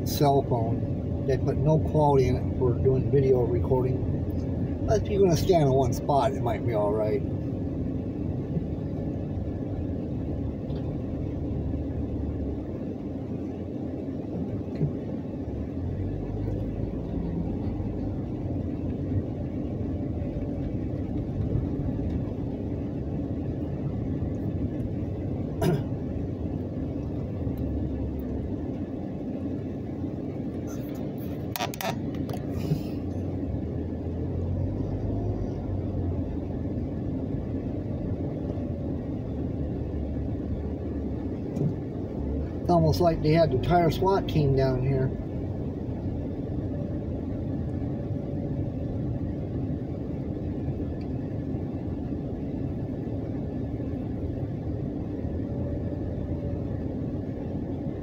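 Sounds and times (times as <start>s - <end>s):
car engine and tyres rumbling: 0.0s - 58.0s.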